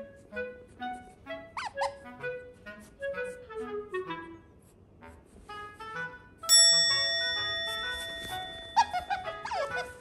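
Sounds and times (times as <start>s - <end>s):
otter squeak: 1.5s - 2.0s, 7.4s - 10.0s
bell-like note in music: 6.5s - 10.0s.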